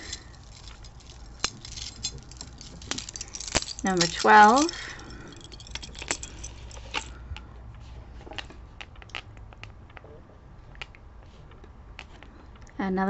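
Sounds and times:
metal chain necklace clinking: 0.0 - 7.2.

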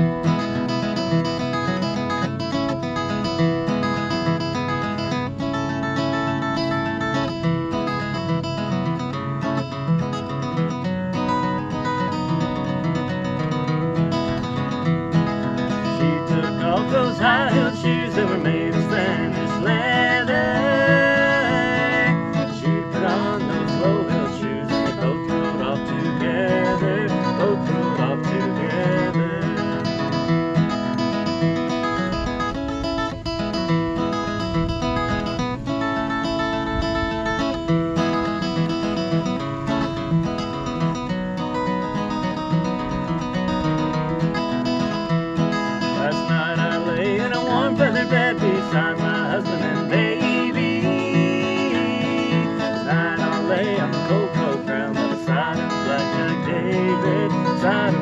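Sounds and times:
acoustic guitar strumming and picking: 0.0 - 58.0.

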